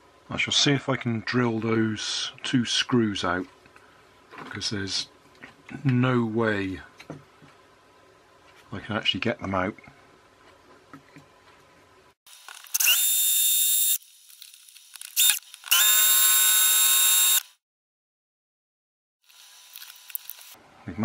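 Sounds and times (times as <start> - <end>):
cordless drill whining: 12.6 - 14.0, 15.2 - 17.6.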